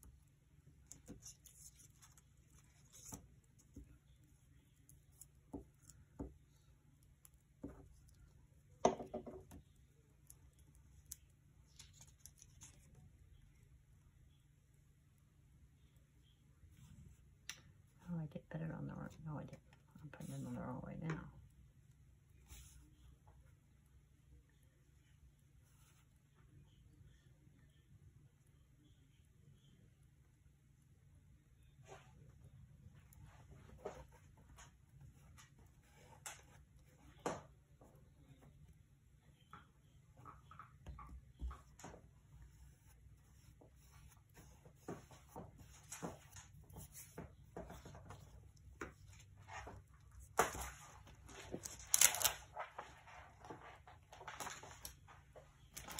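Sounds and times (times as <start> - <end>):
faint paper rustling: 0.8 - 8.3, 22.3 - 23.6, 25.5 - 26.3, 40.2 - 55.9.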